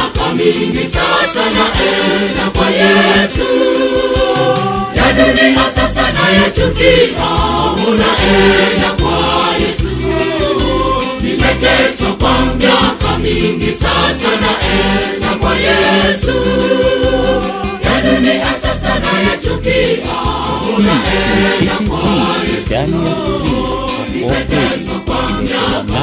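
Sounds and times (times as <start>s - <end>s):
choir singing gospel: 0.0s - 26.0s
steady drum beat: 3.4s - 10.2s, 17.8s - 24.8s
heavy bass line: 17.8s - 19.0s, 20.5s - 24.7s.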